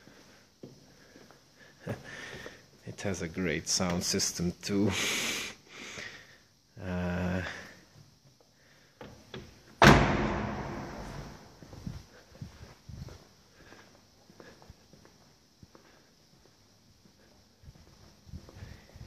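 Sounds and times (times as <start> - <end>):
faint footsteps: 0.0 - 3.2, 10.2 - 19.0
car door slam echoing: 9.8 - 11.5.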